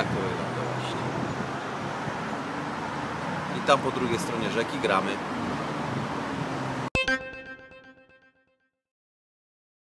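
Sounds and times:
street traffic noise: 0.0 - 7.1
ringing musical chord: 7.0 - 8.7.

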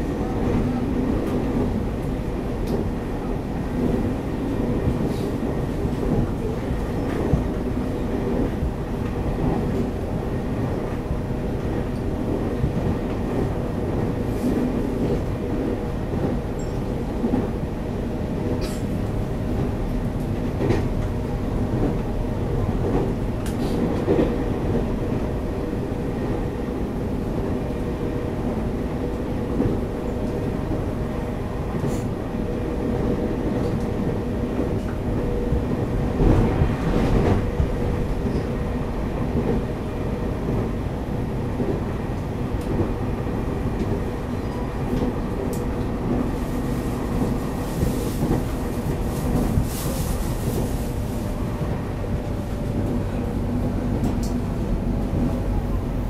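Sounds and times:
train hum: 0.0 - 56.0
train wheels rumbling on rails: 0.0 - 56.0.

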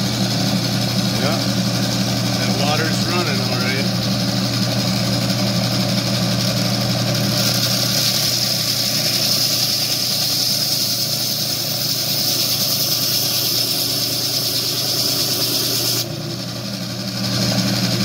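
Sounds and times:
motor humming: 0.0 - 18.0
band saw blade cutting hiss: 7.4 - 16.1.

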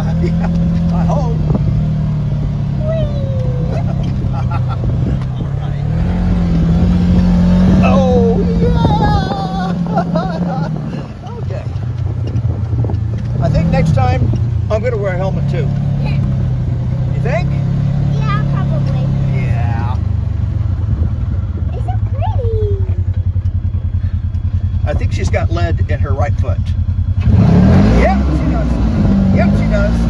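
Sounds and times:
voices: 0.0 - 12.0, 13.2 - 16.4, 17.0 - 20.0, 21.6 - 23.5, 24.2 - 26.8, 27.7 - 30.0
utility vehicle engine under throttle: 0.0 - 30.0.

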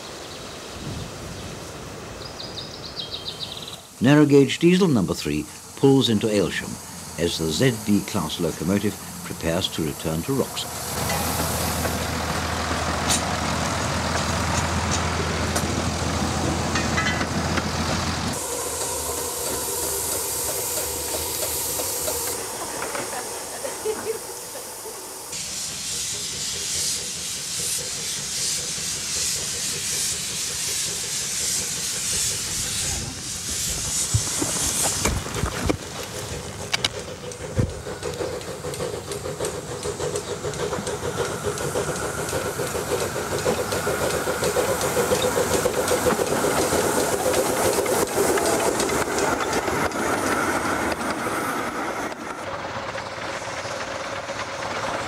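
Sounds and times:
steam locomotive hissing: 0.0 - 55.0
diesel locomotive running: 0.1 - 55.0.

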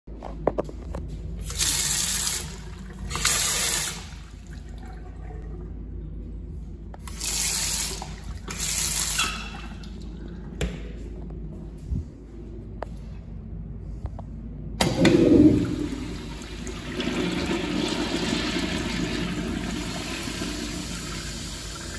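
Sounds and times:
faucet water running into sink: 1.4 - 4.7, 7.0 - 10.0, 15.6 - 21.9.

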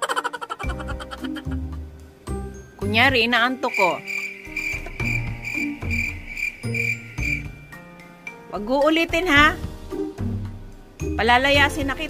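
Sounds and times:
slow low tune: 0.7 - 8.0
crickets chirping: 3.6 - 7.9.

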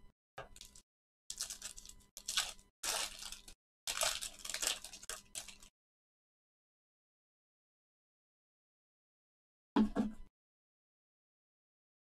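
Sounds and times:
plastic sleeve crinkling: 0.4 - 5.7.

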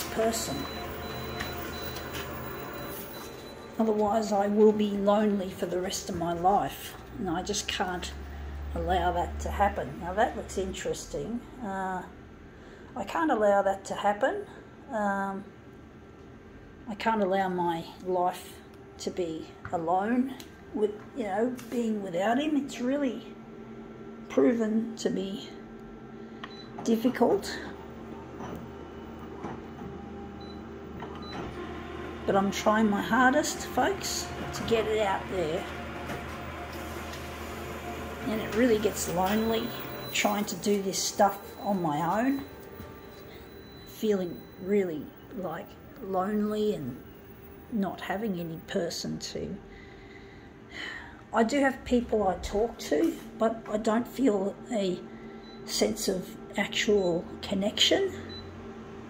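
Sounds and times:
photocopier humming: 0.0 - 10.8, 18.7 - 48.7, 52.2 - 59.0.

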